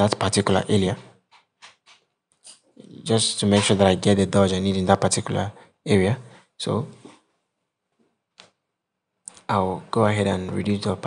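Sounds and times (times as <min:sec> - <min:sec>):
man speaking: 0:00.0 - 0:01.2, 0:02.6 - 0:07.2, 0:09.3 - 0:11.0.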